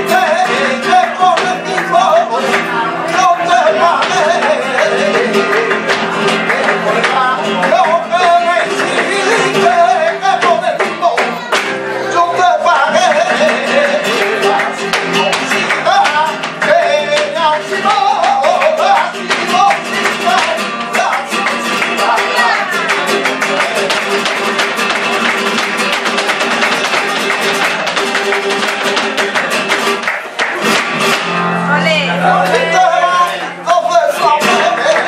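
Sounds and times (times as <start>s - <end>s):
dance footwork stamping: 0.0s - 11.8s, 12.5s - 31.4s
person singing: 0.0s - 26.1s, 31.8s - 35.0s
acoustic guitar playing: 0.0s - 35.0s
hand claps: 0.1s - 11.8s, 12.8s - 31.4s, 34.2s - 35.0s.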